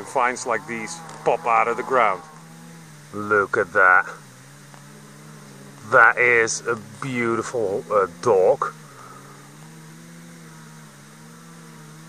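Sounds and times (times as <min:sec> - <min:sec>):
distant engine drone: 0:00.0 - 0:12.0.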